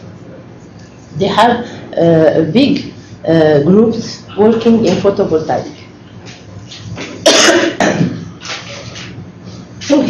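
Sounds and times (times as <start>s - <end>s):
woman coughing: 7.2s - 8.3s.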